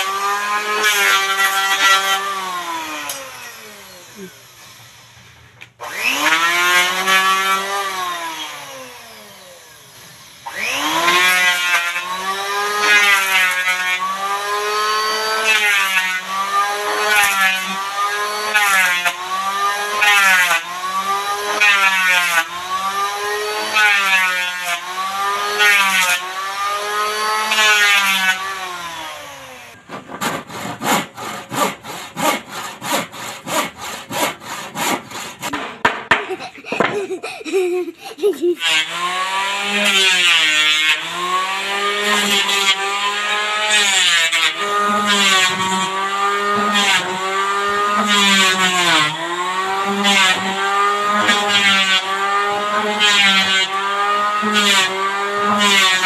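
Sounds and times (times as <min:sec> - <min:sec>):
electric hand planer shaving wood: 0:00.0 - 0:56.0
sharp strokes on wood: 0:10.5 - 0:56.0.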